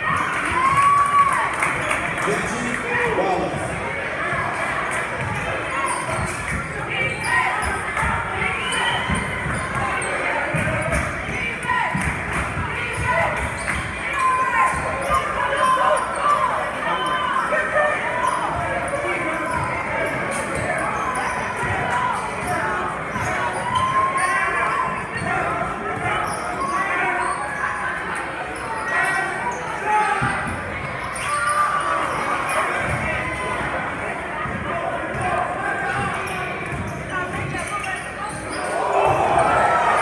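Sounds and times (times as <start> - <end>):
crowd voices: 0.0 - 40.0.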